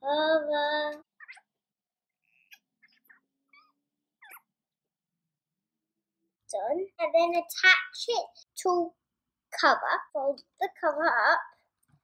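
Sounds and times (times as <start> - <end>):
faint chirping calls: 1.2 - 1.5, 2.2 - 4.6.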